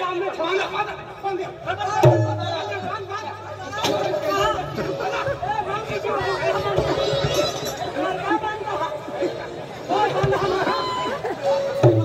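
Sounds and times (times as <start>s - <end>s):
men talking and calling out: 0.0s - 12.0s.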